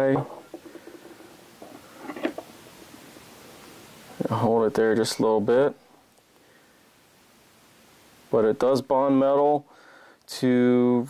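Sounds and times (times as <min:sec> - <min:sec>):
faint room hiss: 0:00.0 - 0:11.0
clicks and rustles of handled parts: 0:00.4 - 0:02.5.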